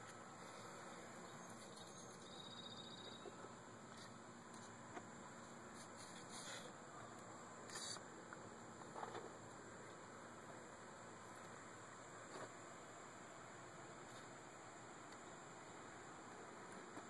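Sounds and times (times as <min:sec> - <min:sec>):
faint background hiss: 0:00.0 - 0:17.0
faint high-pitched trill: 0:01.4 - 0:03.3.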